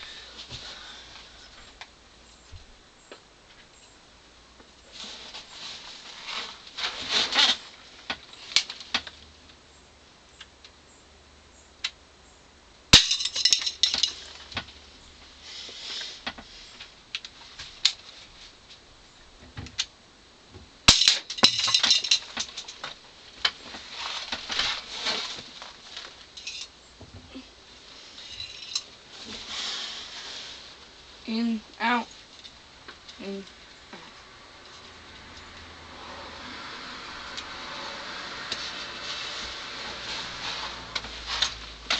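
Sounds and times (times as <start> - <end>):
can hissing and rattling: 28.2 - 30.8.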